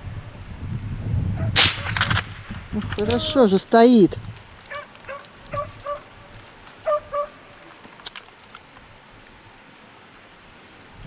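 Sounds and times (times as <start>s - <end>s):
rifle shot crack: 1.5s - 3.5s.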